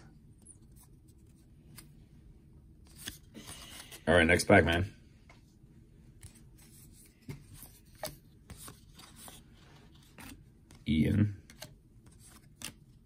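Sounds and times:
cards rubbing and clicking: 11.4s - 13.0s.

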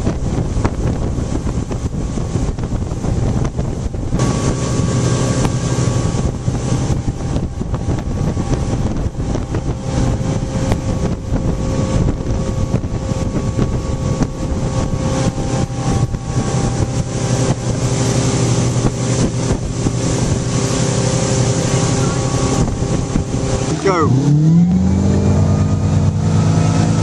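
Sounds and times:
motorboat engine running: 0.0s - 27.0s
rush of boat wake: 0.0s - 27.0s
wind buffeting microphone: 0.0s - 27.0s.

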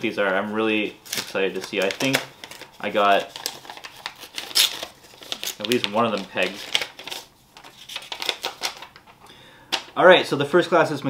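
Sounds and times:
paper crackling: 0.4s - 9.1s.

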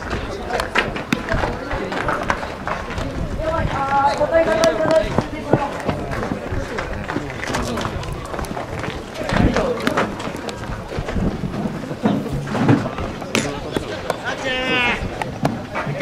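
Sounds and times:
players shouting: 13.0s - 16.0s.

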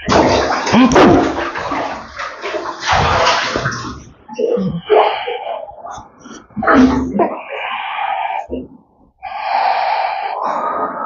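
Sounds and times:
water splashing in a tank: 0.0s - 8.7s.

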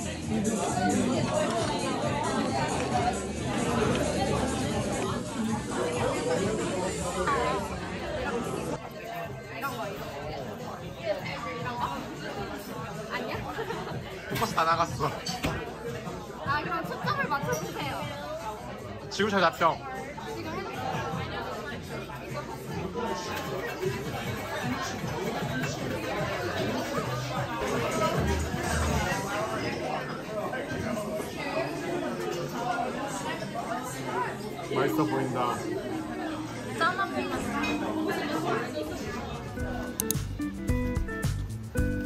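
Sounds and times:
chatter of many people: 0.0s - 42.0s
music with guitar and beat: 39.5s - 42.0s.

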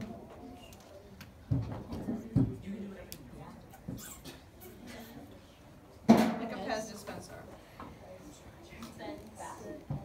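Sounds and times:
faint murmuring: 0.0s - 10.0s.

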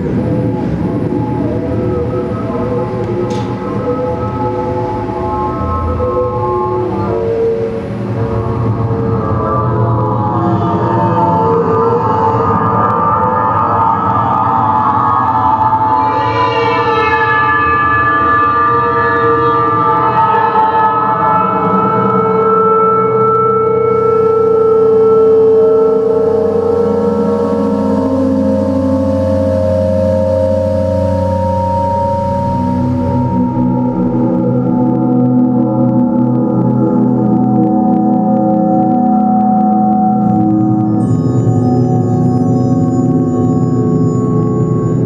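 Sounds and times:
electronic drone music: 0.0s - 45.0s.

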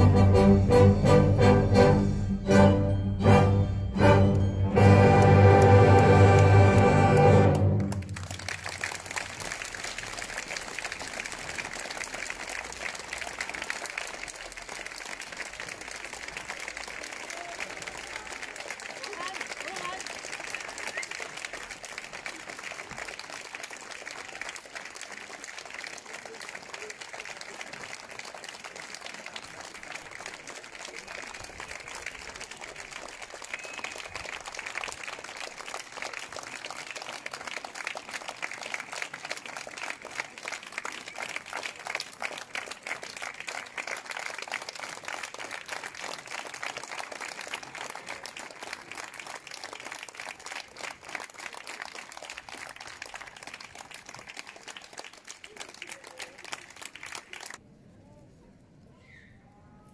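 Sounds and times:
audience applauding: 4.3s - 57.6s.

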